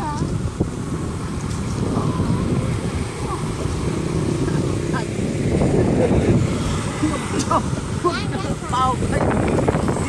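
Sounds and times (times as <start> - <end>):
motorbike passing: 0.0 - 10.0
wind rumble on microphone: 0.0 - 10.0.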